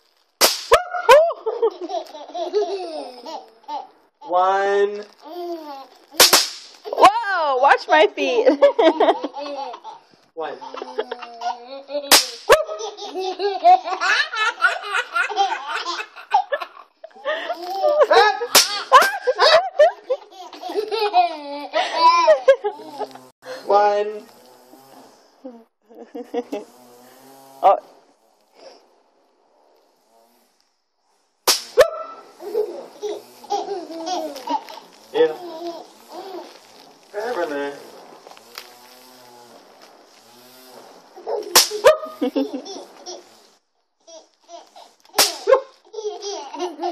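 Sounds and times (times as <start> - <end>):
snap pops cracking on concrete: 0.4 - 0.8, 6.2 - 7.0, 12.1 - 12.6, 18.6 - 19.2, 31.5 - 31.9, 41.5 - 42.0, 45.1 - 45.6
baby laughing: 0.9 - 4.3, 5.2 - 6.2, 8.7 - 23.2, 32.0 - 36.6, 41.2 - 43.4, 44.1 - 46.9.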